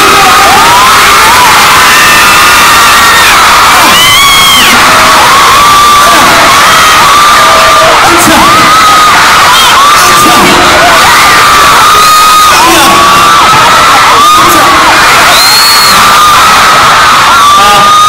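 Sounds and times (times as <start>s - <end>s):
crowd screaming: 0.0s - 18.0s.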